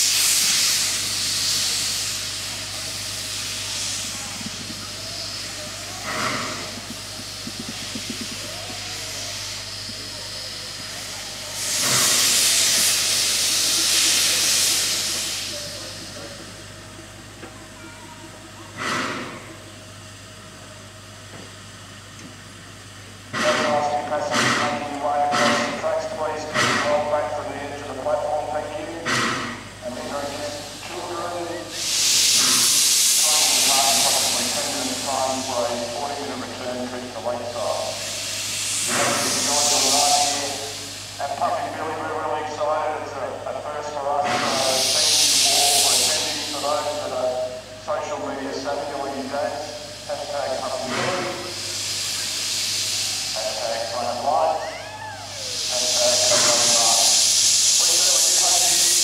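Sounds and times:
steam locomotive hissing steam: 0.0s - 59.0s
voices: 1.5s - 19.7s, 23.3s - 32.5s, 33.1s - 52.4s, 53.2s - 59.0s.

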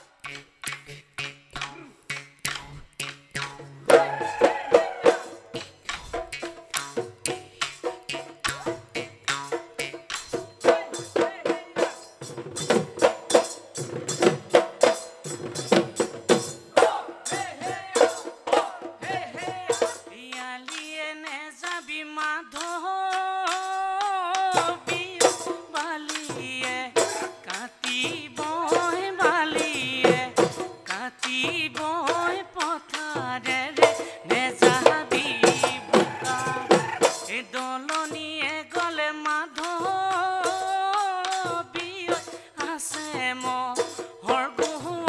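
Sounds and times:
drum strokes: 1.6s - 20.9s, 23.5s - 45.0s
woman singing: 3.8s - 5.4s, 18.9s - 45.0s
woman singing a long note: 34.6s - 36.8s.

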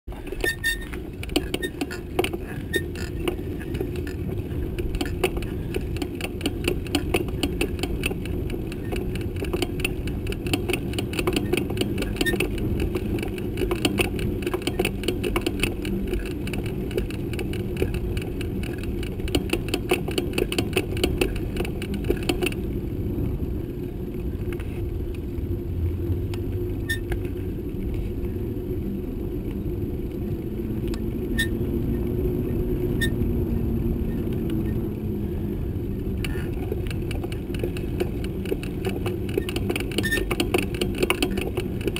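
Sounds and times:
rattling clicks from bike: 0.1s - 22.8s, 36.2s - 41.9s
bicycle tyres rolling on pavement: 0.1s - 41.9s.

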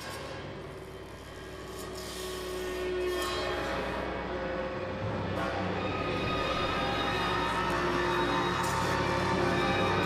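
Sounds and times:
chamber ensemble noisy texture: 4.2s - 10.0s.

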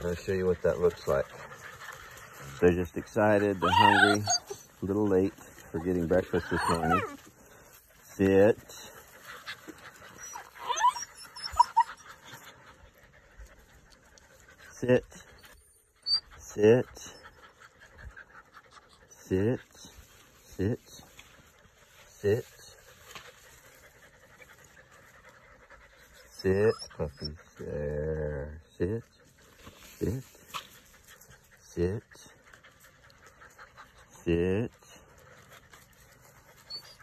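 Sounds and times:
puppies panting faintly: 0.0s - 37.0s
puppy squeak: 3.6s - 4.7s, 6.4s - 7.2s, 10.2s - 12.0s, 15.6s - 16.3s, 26.3s - 27.4s, 36.7s - 37.0s.

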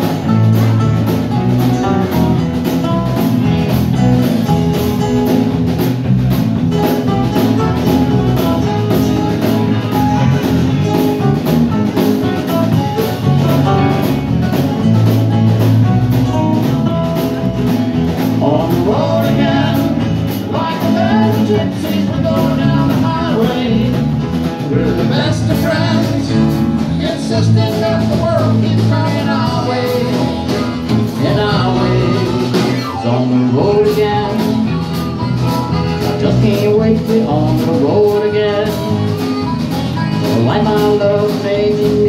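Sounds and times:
live country band playing: 0.0s - 42.0s.

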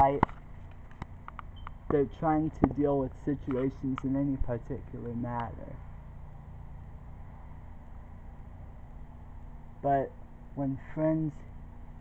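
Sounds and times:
low background hum and hiss: 0.0s - 12.0s.

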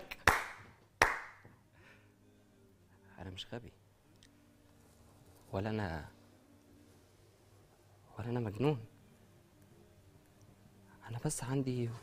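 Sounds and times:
hand claps with room echo: 0.0s - 1.7s.

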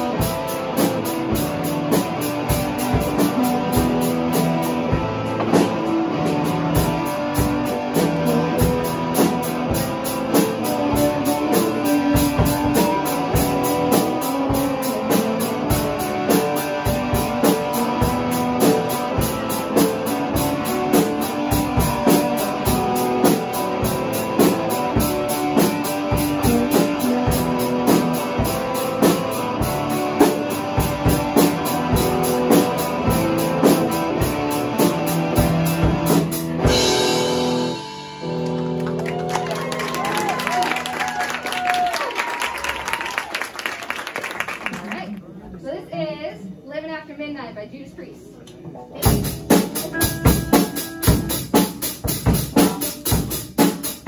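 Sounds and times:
electric guitars: 0.0s - 43.6s, 48.5s - 54.0s
drum kit beating: 0.0s - 44.7s, 48.8s - 54.0s.

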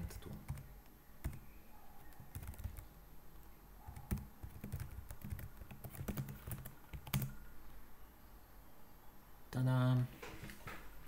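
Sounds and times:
typing on computer keyboard: 0.1s - 1.4s, 2.2s - 2.9s, 3.9s - 7.4s.

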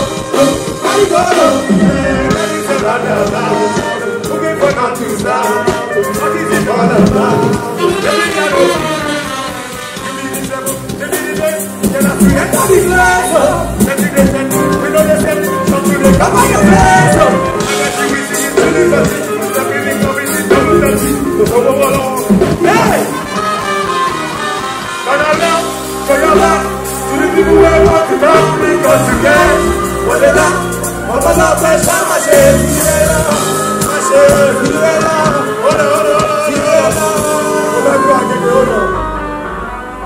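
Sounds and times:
man singing into microphone: 0.0s - 23.6s, 25.0s - 39.4s
live band beat: 0.0s - 40.0s
trumpets playing held notes: 0.0s - 40.0s.

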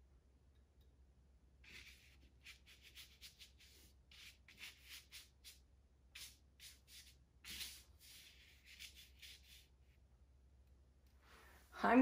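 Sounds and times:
paintbrush swishing on paper: 1.6s - 10.1s.

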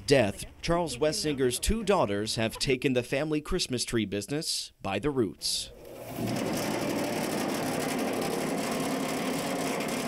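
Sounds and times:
machine motor humming: 5.7s - 10.0s.

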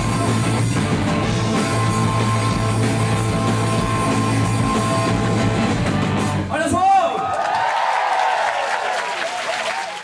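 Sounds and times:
audience applauding: 7.2s - 10.0s.

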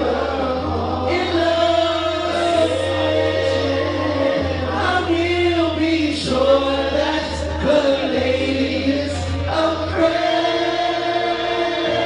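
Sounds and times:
backing track with heavy bass: 0.0s - 12.0s
man singing karaoke: 0.0s - 12.0s.

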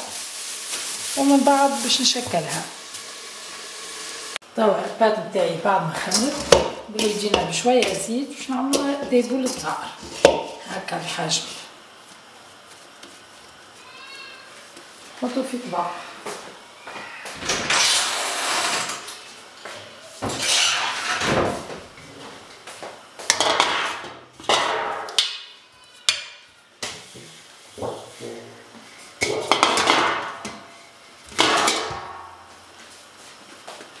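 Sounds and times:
kitchen utensils clattering and scraping: 5.9s - 11.5s, 20.2s - 21.7s, 23.3s - 25.4s, 29.2s - 30.6s, 31.4s - 32.2s.

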